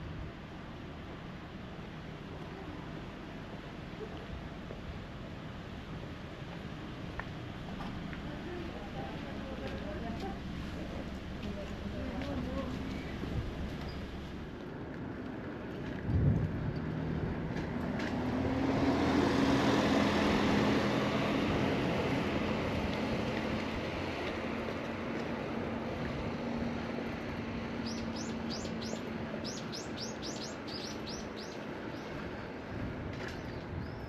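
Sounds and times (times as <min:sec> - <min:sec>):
vehicle engine and road noise: 0:00.0 - 0:34.0
small bird chirping: 0:27.8 - 0:32.1.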